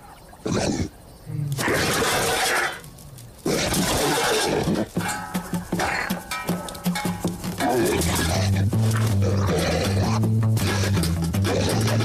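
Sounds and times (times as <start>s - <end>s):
background music: 5.0s - 12.0s
cartoon lion roar: 7.6s - 12.0s.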